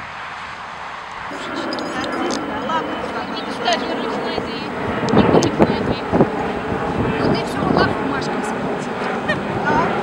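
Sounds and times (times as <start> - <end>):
indistinct talking: 1.3 - 10.0
wind buffeting microphone: 1.3 - 10.0.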